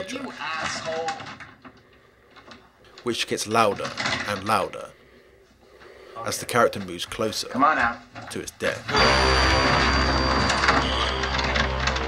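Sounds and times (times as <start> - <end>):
synthesizer chord with low drone: 8.9 - 12.0
thin high tone: 8.9 - 12.0.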